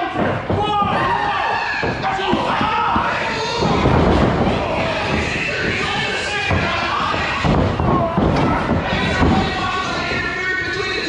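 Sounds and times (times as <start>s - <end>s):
people yelling: 0.0s - 11.0s.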